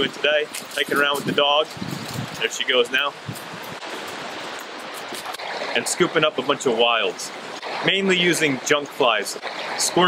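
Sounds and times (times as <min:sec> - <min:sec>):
stream running over stones: 0:00.0 - 0:10.0.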